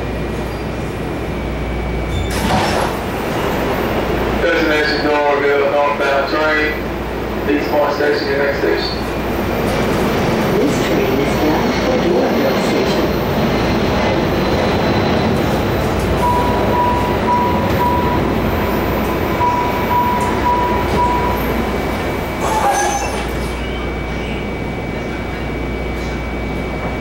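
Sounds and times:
subway car rumbling on track: 0:00.0 - 0:27.0.

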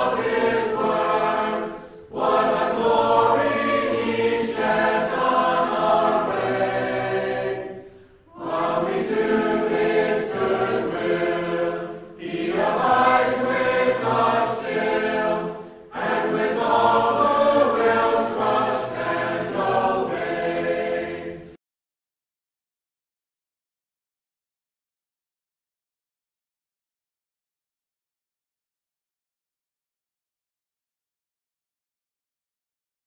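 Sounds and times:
choir singing: 0:00.0 - 0:21.6.

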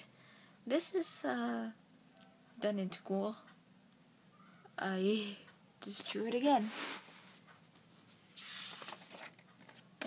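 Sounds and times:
paper rustling: 0:06.0 - 0:09.9
paper page swish: 0:08.4 - 0:09.3.

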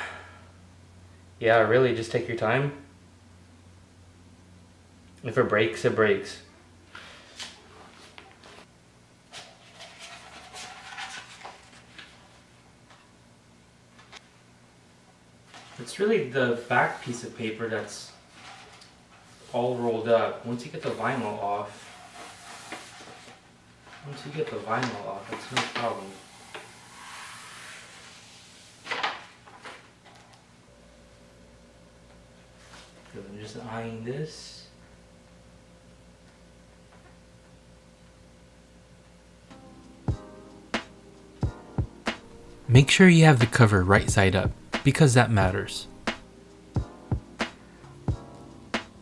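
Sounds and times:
sharp crinkle of vinyl sheet: 0:09.4 - 0:12.4.

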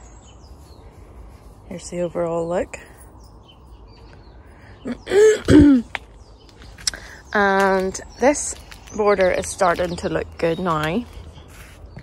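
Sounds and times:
woman clearing her throat: 0:05.0 - 0:06.0.

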